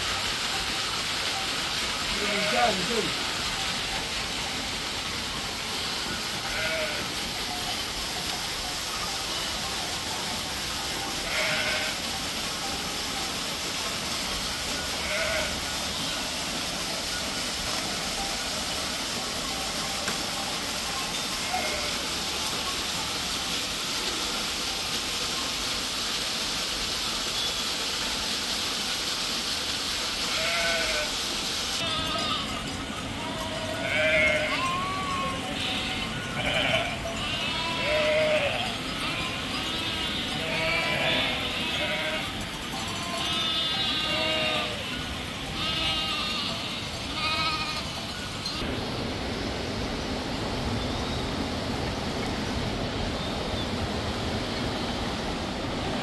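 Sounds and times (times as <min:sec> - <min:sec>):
waterfall rushing into pool: 0:00.0 - 0:56.0
sheep and goats bleating: 0:02.1 - 0:03.2, 0:06.1 - 0:07.6, 0:11.2 - 0:12.2, 0:14.8 - 0:16.3, 0:20.4 - 0:22.1, 0:30.3 - 0:31.1, 0:31.8 - 0:48.7.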